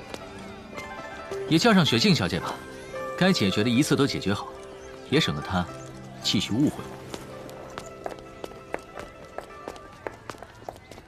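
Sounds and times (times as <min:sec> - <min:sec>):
footsteps on stone paving: 0:00.0 - 0:01.7, 0:03.8 - 0:11.0
soft background music: 0:00.0 - 0:11.0.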